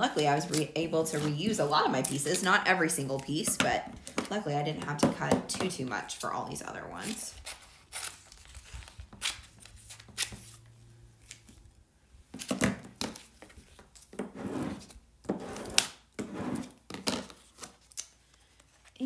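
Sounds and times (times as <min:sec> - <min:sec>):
plastic film crinkling: 0:07.0 - 0:11.7.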